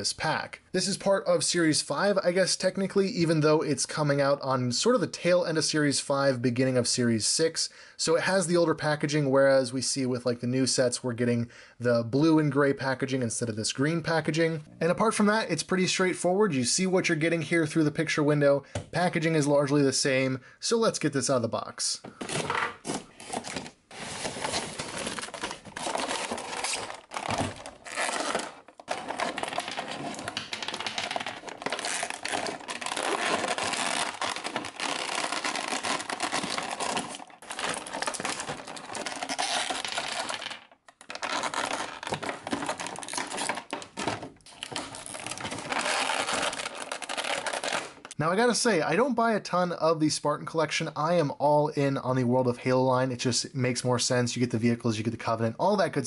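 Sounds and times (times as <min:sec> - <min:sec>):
plastic blister tray crinkling: 0:22.8 - 0:48.2.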